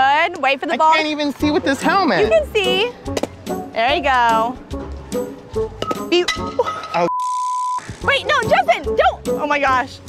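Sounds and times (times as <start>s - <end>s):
background music: 0.6s - 7.1s, 7.8s - 10.0s.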